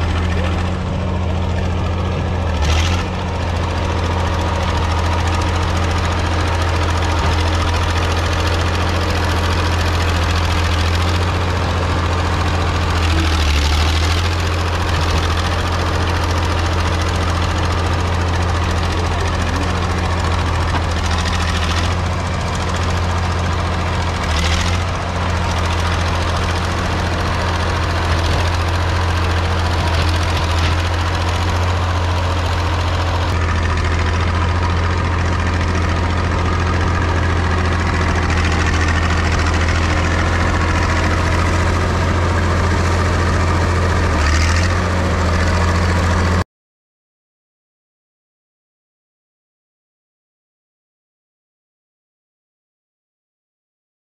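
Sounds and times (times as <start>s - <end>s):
bulldozer diesel engine running: 0.0s - 46.4s.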